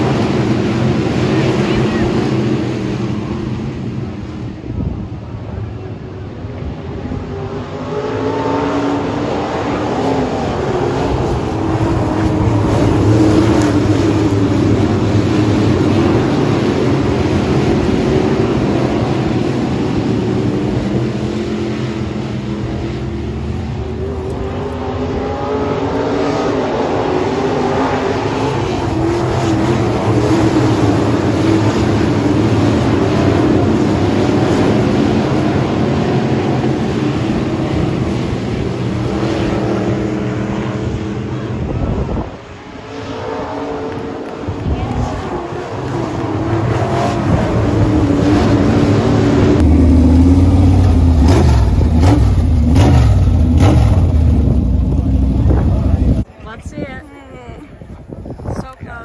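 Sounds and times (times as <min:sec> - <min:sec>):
deep engine rumble: 0:00.0 - 0:08.2, 0:09.0 - 0:27.0, 0:28.3 - 0:59.0
race car engines circling: 0:00.0 - 0:59.0.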